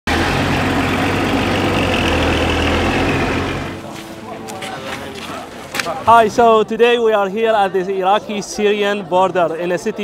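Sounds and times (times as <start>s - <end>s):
truck engine idling: 0.1s - 5.7s.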